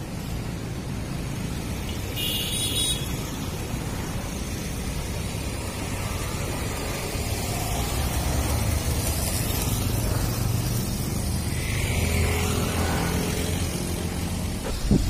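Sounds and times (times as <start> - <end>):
motorbike driving past: 3.5 - 15.0.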